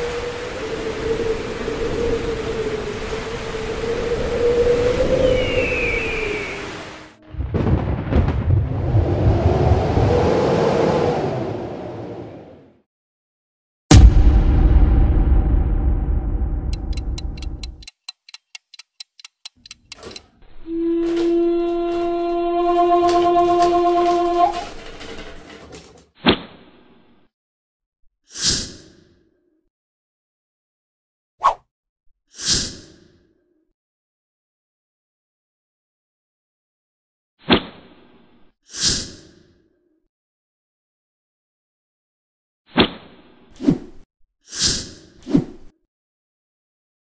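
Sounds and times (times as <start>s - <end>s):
hit tail: 13.9s - 17.6s
low rumble: 13.9s - 17.7s
fast clock-like ticking: 16.7s - 20.2s.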